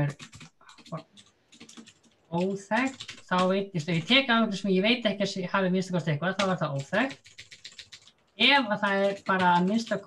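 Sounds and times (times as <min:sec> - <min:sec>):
computer keyboard typing: 0:00.0 - 0:04.6, 0:05.8 - 0:10.0.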